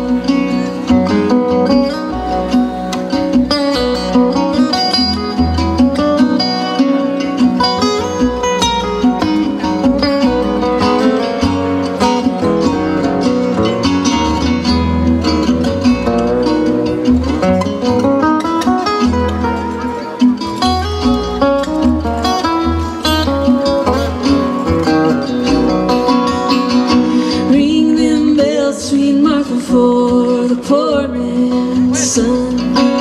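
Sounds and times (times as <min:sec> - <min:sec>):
picked acoustic guitars: 0:00.0 - 0:33.0
plucked double bass: 0:00.0 - 0:33.0.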